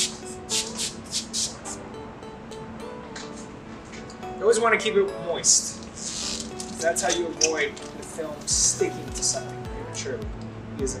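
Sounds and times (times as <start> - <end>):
water spray wand squirts: 0.0 - 1.6, 5.8 - 8.0
background music: 0.0 - 11.0.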